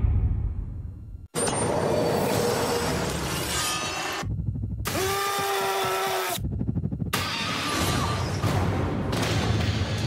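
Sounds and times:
low rumble: 0.0 - 1.3.

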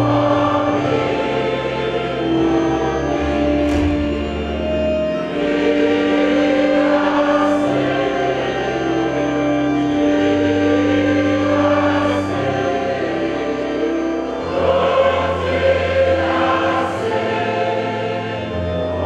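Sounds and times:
choir and congregation singing hymn: 0.0 - 19.0.

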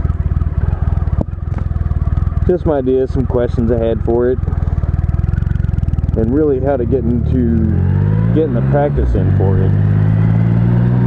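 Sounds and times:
motorcycle engine idling: 0.0 - 10.3.

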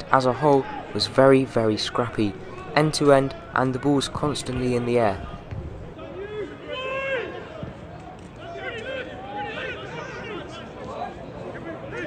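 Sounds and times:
crowd hubbub: 0.0 - 12.0.

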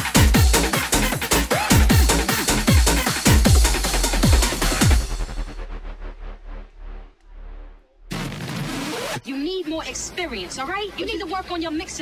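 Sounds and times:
hard bounce dance track: 0.0 - 7.2.

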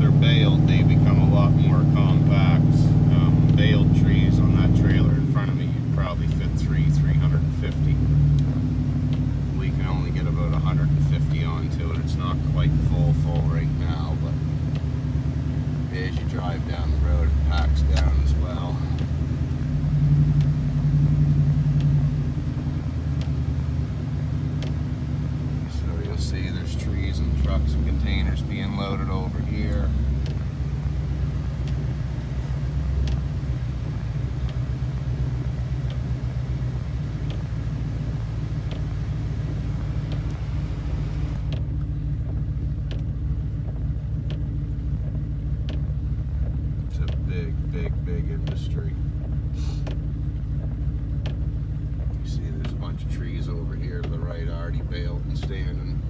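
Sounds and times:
road noise: 0.0 - 56.0
vehicle engine rumble: 0.0 - 56.0.

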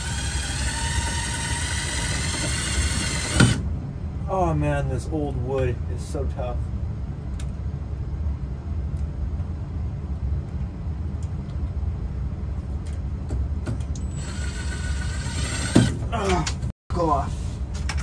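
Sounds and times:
cordless drill boring into wood: 0.0 - 3.6, 14.2 - 16.0
steady low hum: 0.0 - 18.0.

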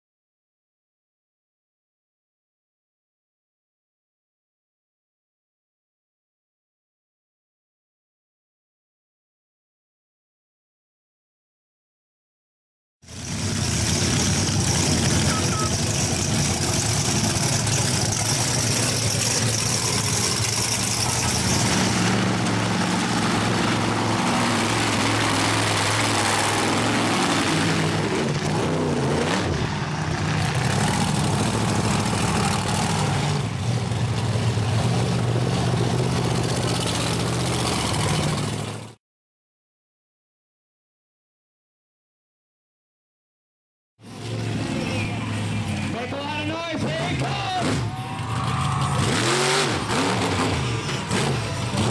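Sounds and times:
monster truck engines revving: 13.1 - 39.0, 44.0 - 51.9.

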